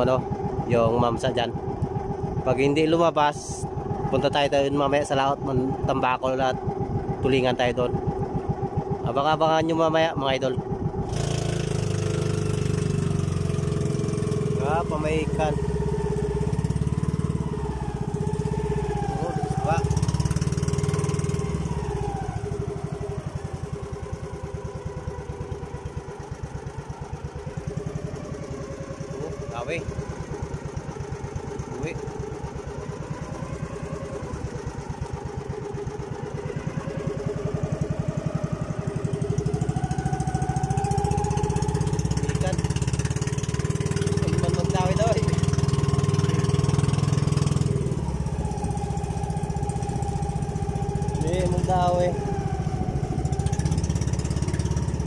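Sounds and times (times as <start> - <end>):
boat engine running: 0.0 - 55.0.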